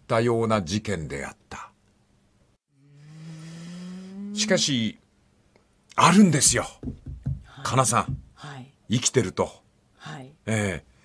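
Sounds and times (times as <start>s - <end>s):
man humming drawn-out vowel: 2.7s - 5.0s.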